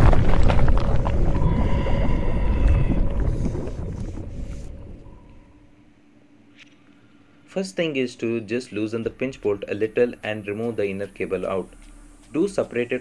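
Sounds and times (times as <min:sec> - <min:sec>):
deep rumbling boom: 0:00.0 - 0:05.6
faint ringing tones: 0:01.3 - 0:07.5.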